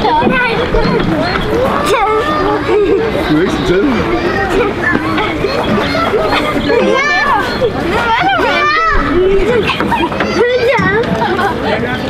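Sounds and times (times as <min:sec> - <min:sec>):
children shouting at play: 0:00.0 - 0:12.0.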